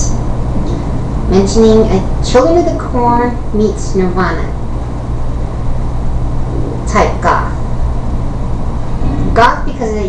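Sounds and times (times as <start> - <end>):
steady low hum: 0.0 - 10.0
woman talking: 1.3 - 4.6, 6.8 - 7.6, 9.3 - 10.0.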